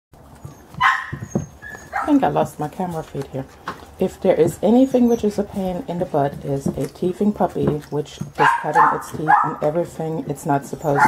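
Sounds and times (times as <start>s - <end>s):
puppies gnawing bones: 0.2s - 11.0s
puppy barking: 0.4s - 2.2s, 8.4s - 9.7s.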